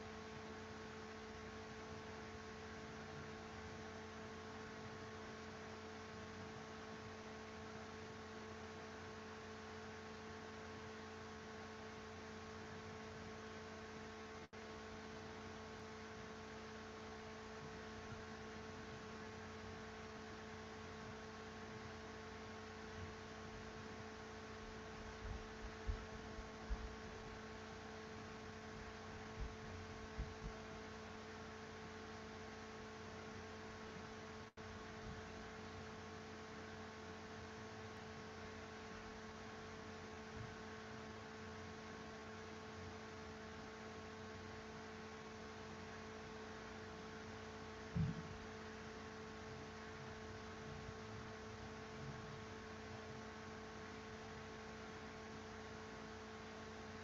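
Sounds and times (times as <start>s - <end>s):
faint electrical hum: 0.0s - 57.0s
soft low knocks: 48.0s - 48.4s.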